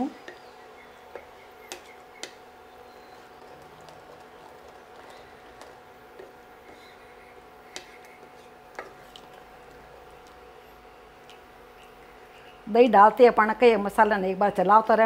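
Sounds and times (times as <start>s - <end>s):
faint steady hum: 0.0s - 15.0s
spatula stirring gravy in pan: 0.2s - 12.6s.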